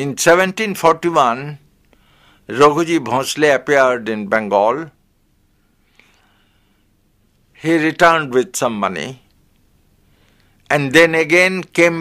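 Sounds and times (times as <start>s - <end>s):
soft breath: 1.9s - 2.5s, 5.5s - 7.1s, 10.0s - 10.7s.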